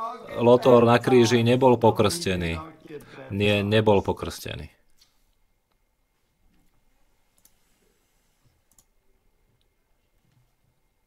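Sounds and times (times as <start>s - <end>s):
faint clicks: 6.5s - 7.6s, 8.6s - 9.0s.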